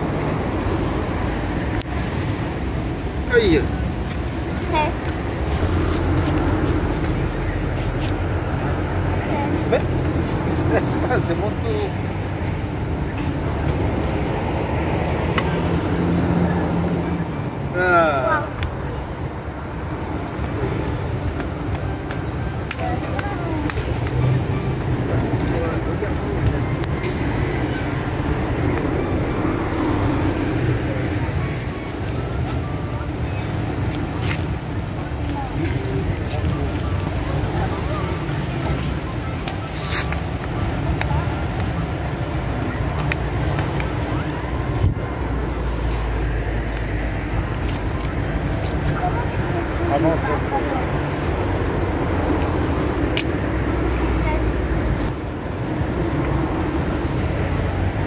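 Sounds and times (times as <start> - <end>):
indistinct voices talking: 0.0 - 58.0.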